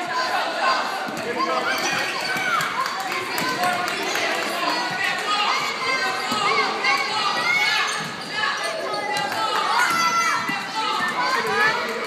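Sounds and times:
overlapping voices: 0.0s - 7.6s, 8.4s - 12.0s.

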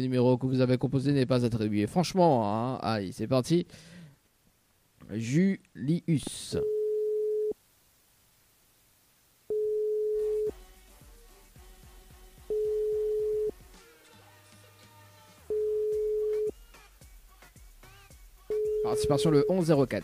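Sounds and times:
telephone ringback tone: 6.6s - 7.6s, 9.5s - 10.5s, 12.5s - 13.6s, 15.5s - 16.5s, 18.5s - 19.6s
faint background music: 9.5s - 20.0s.

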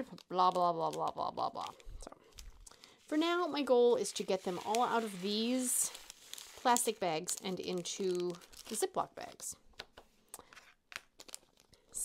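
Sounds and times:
plastic bags crinkling: 0.1s - 9.4s, 11.0s - 12.0s.

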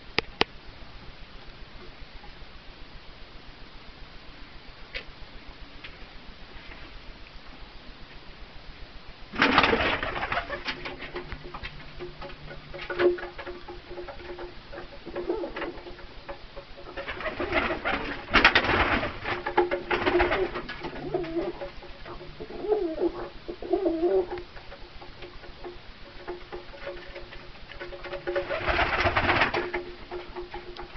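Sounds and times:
pigeons cooing: 9.4s - 30.9s.

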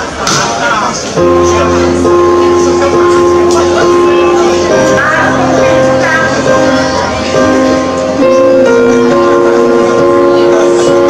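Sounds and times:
pop ballad backing track: 1.2s - 11.0s.

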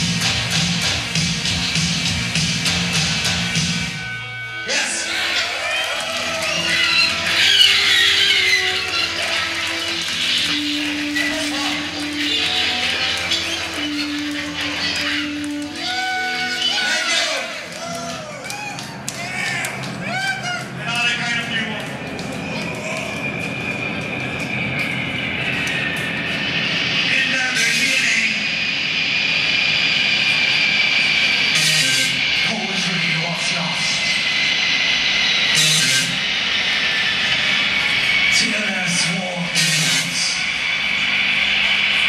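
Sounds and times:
sustained high drone: 0.0s - 42.0s.

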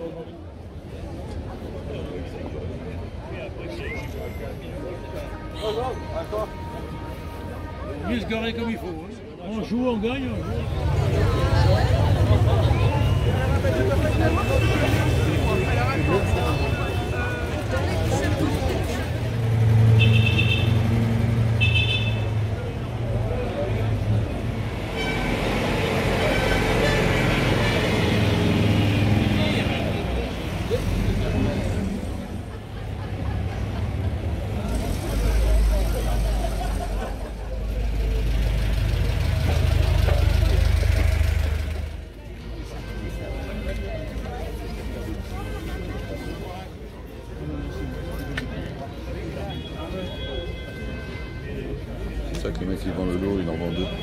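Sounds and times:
crowd voices: 0.0s - 54.0s
car and moped engines passing: 10.4s - 42.3s
horn toots: 19.7s - 22.4s, 24.7s - 30.0s.

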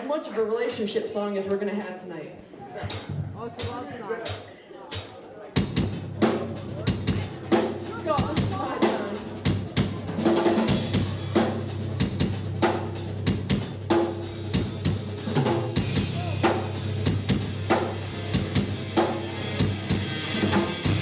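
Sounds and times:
drum kit beat: 2.8s - 21.0s
live rock band playing: 5.0s - 21.0s.

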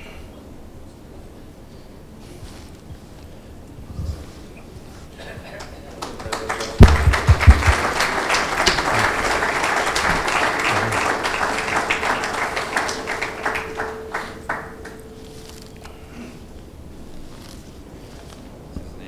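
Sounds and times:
audience applauding: 5.2s - 15.8s
heavy thumps: 6.8s - 8.0s.

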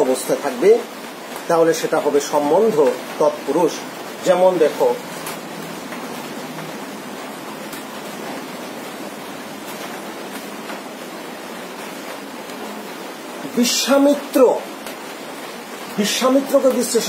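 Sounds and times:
room background hiss: 0.0s - 17.0s.

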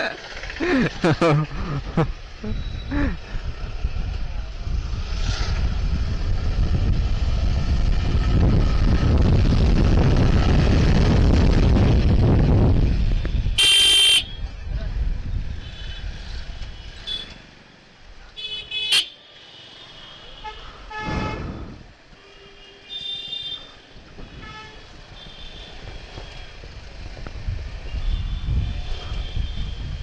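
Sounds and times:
motorcycle engine rumble: 0.0s - 18.6s
vehicle horn toots: 13.6s - 14.4s.

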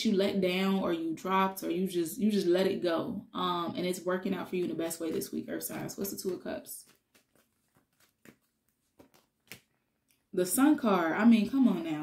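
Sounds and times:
faint clicks of cards handled: 6.2s - 10.3s.

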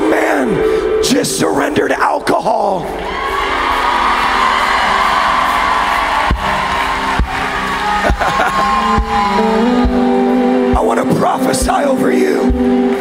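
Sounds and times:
worship band music: 0.0s - 13.0s
crowd cheering and whooping: 3.0s - 10.4s.

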